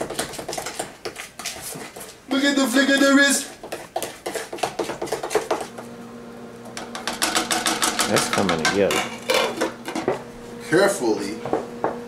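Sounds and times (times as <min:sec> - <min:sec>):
batter beaten in mixing bowl: 0:00.0 - 0:05.9, 0:06.7 - 0:09.6.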